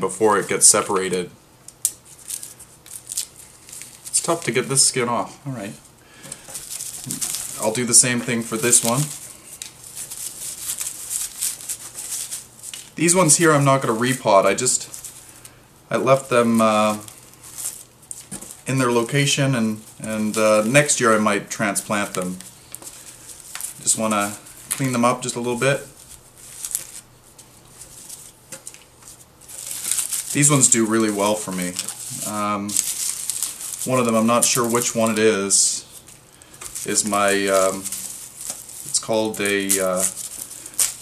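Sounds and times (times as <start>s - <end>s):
papery leaves crackling: 2.0s - 5.0s, 6.3s - 41.0s.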